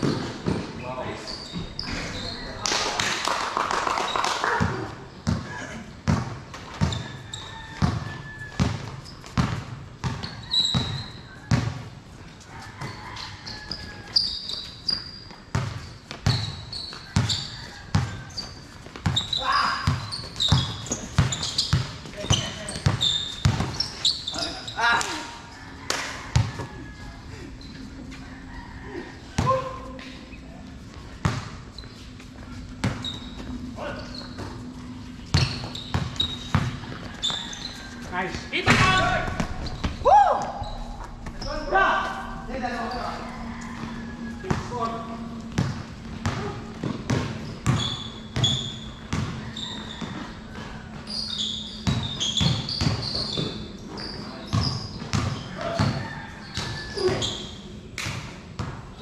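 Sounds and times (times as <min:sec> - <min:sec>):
basketball bouncing on concrete: 0:04.6 - 0:11.8, 0:15.5 - 0:18.2, 0:18.8 - 0:23.8, 0:26.3 - 0:26.7, 0:29.4 - 0:29.7, 0:31.2 - 0:31.6, 0:35.3 - 0:37.5, 0:45.5 - 0:50.2
players calling out: 0:35.3 - 0:52.4.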